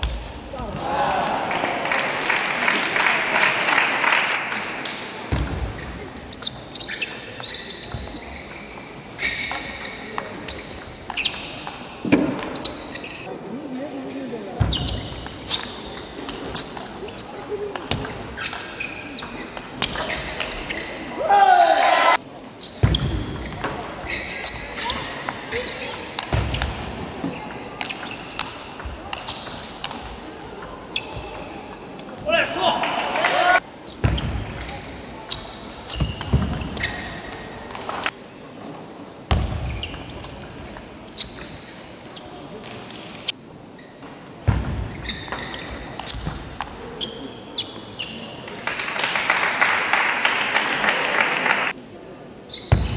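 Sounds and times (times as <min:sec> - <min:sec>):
loud shouts: 0:00.6 - 0:01.9, 0:21.2 - 0:22.2, 0:32.3 - 0:33.6.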